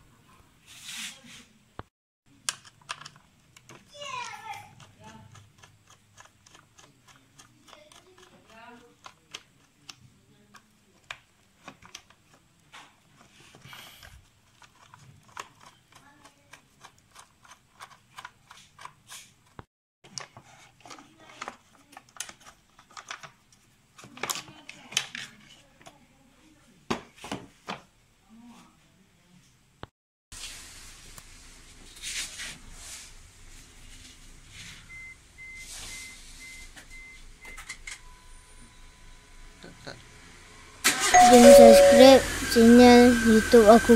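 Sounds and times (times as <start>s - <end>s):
jingle with chime-like tones: 41.1s - 42.6s
person speaking: 41.1s - 43.9s.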